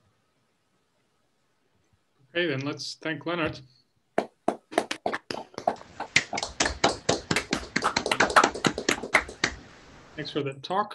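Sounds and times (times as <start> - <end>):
people clapping: 4.2 - 9.7.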